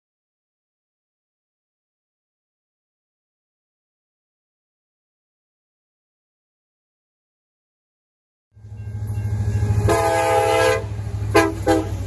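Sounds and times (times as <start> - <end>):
low engine rumble: 8.6 - 12.0
locomotive horn blasts: 9.6 - 12.0.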